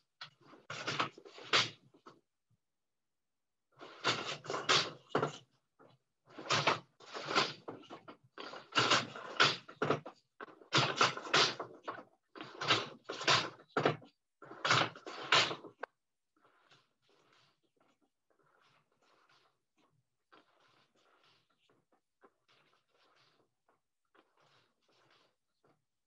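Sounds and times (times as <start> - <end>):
wooden loom knocks and clatters: 3.9 - 5.4, 6.3 - 15.9.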